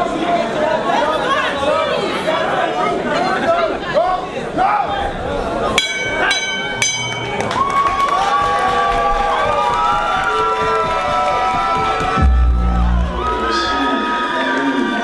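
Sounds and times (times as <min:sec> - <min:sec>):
crowd shouting and chattering: 0:00.0 - 0:15.0
crowd cheering: 0:04.1 - 0:15.0
boxing ring bell: 0:05.8 - 0:07.5.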